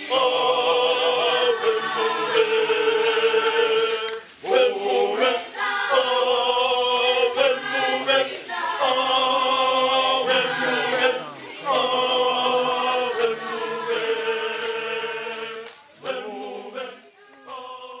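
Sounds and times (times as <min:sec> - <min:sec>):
group singing a cappella: 0:00.0 - 0:18.0.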